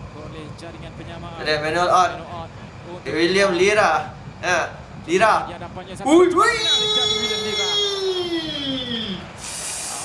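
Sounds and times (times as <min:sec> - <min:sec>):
man's drawn-out exclamation: 0:06.1 - 0:09.4
hissing through teeth: 0:09.4 - 0:10.0.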